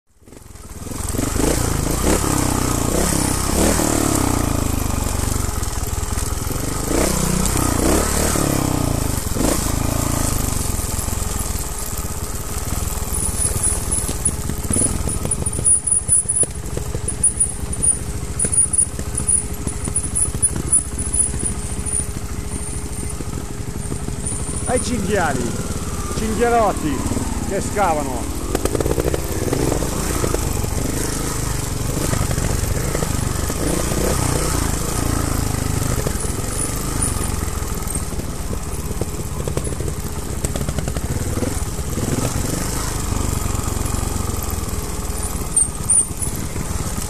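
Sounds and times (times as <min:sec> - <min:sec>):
bike rattling on dirt trail: 0:00.2 - 0:47.0.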